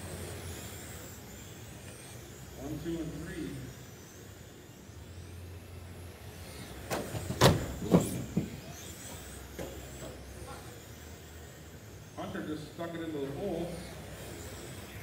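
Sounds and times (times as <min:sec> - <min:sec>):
rc car motors whining: 0:00.0 - 0:15.0
steady low hum: 0:00.0 - 0:15.0.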